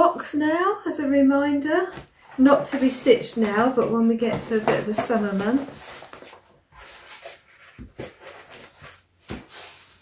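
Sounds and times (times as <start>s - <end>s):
fabric and plastic rustling: 1.8s - 10.0s.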